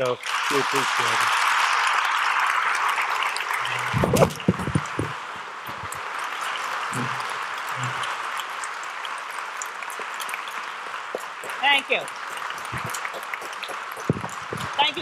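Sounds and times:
audience applauding: 0.0 - 15.0
thumps and rustles on microphone: 3.9 - 6.0, 12.7 - 12.9, 14.0 - 14.8.

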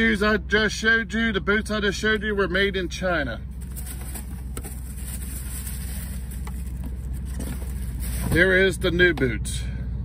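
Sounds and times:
engine idling: 0.0 - 10.0
tissue paper rustling: 3.6 - 8.3.

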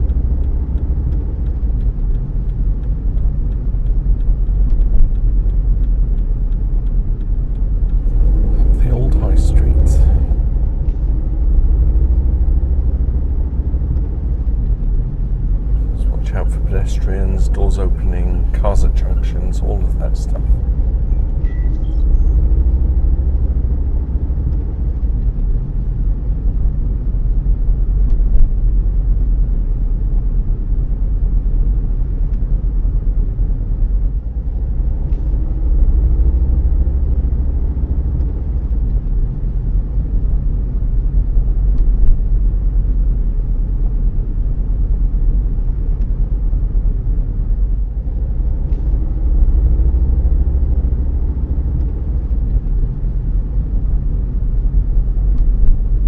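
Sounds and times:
car engine and tyre rumble: 0.0 - 56.0
rising engine note: 7.9 - 13.9, 15.7 - 24.5.

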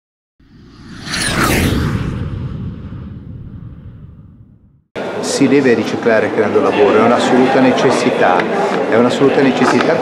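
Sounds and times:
low rumble: 0.4 - 4.9
whoosh: 0.4 - 4.9
falling whistle-like glides: 0.5 - 4.2.

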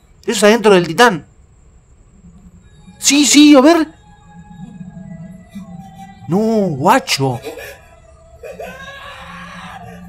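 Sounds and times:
steady low hum: 0.0 - 10.0
drawn-out scream: 2.6 - 10.0.

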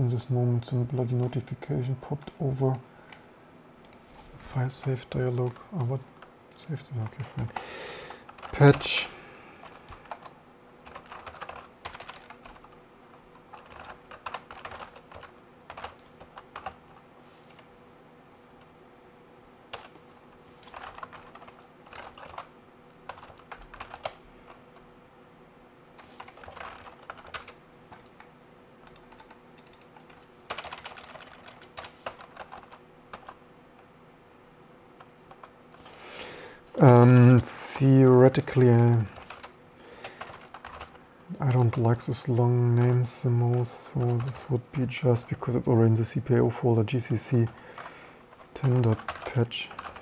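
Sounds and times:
faint steady hum: 0.0 - 50.0
typing on computer keyboard: 8.3 - 8.9, 9.6 - 17.0, 19.7 - 20.0, 20.6 - 22.5, 23.1 - 24.6, 26.0 - 33.4, 39.1 - 41.8, 43.6 - 44.5, 47.5 - 50.0.

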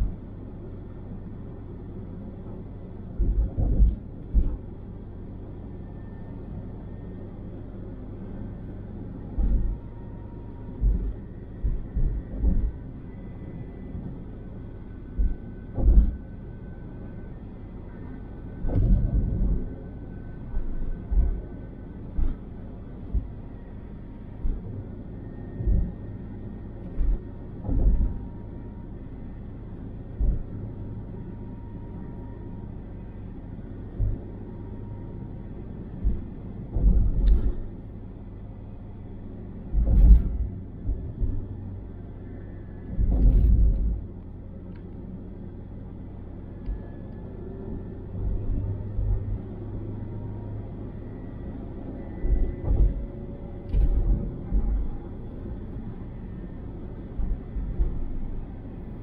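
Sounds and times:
car road and engine hum: 0.0 - 59.0
low rumbling thumps: 3.2 - 4.6, 10.7 - 12.8, 15.2 - 16.2, 18.6 - 19.7, 26.8 - 28.3, 30.1 - 30.6, 36.0 - 37.8, 39.6 - 41.5, 42.9 - 44.1, 52.2 - 55.6, 57.2 - 59.0.

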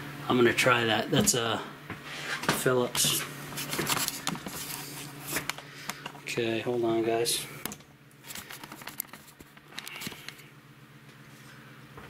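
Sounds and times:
steady low hum: 0.0 - 12.0
hands handling small objects: 8.3 - 10.4.

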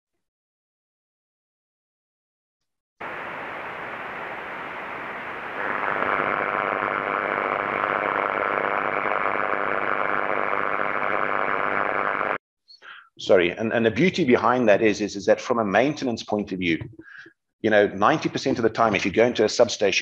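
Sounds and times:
steady noisy hiss: 3.0 - 12.4.

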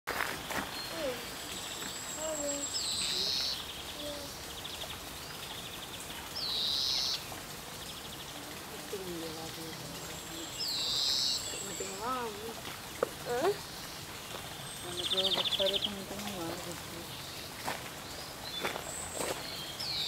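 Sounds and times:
outdoor background noise: 0.1 - 20.0
faint bird chirping: 0.4 - 12.6, 13.2 - 20.0
songbird high phrase: 0.8 - 4.6.

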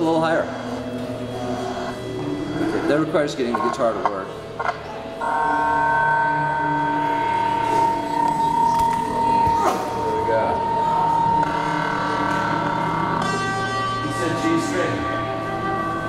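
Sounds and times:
electric guitars droning: 0.0 - 16.0.

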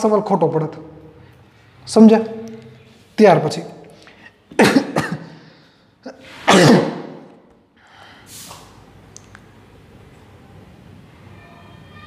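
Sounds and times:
man making loud short sounds: 6.0 - 7.4.

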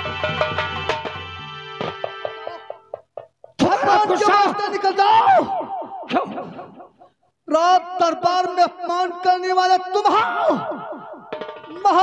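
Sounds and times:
held chord with drum strokes: 0.0 - 3.0.

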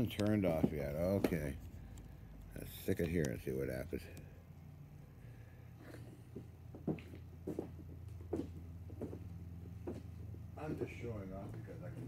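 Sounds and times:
soft footsteps: 0.0 - 4.1, 5.8 - 12.0
low electrical hum: 0.0 - 12.0.

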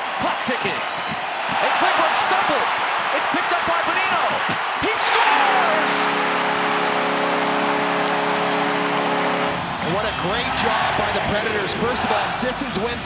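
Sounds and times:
crowd cheering and whooping: 0.0 - 13.0
arena goal horn: 5.3 - 9.8.

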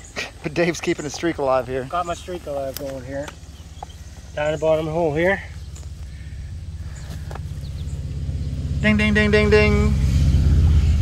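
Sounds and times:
pulsing engine rumble: 0.0 - 11.0
man chanting: 8.7 - 10.2.

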